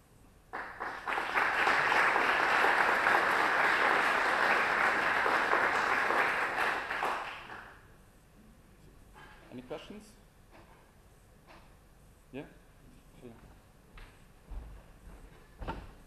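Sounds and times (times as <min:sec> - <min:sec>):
audience applauding: 0:00.5 - 0:07.8.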